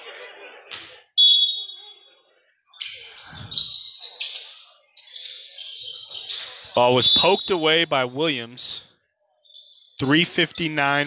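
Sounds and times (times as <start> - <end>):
basketball shoes squeaking: 2.7 - 7.5, 9.4 - 10.0.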